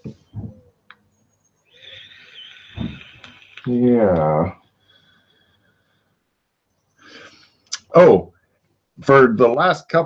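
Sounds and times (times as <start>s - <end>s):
person breathing in at microphone: 7.0s - 7.6s.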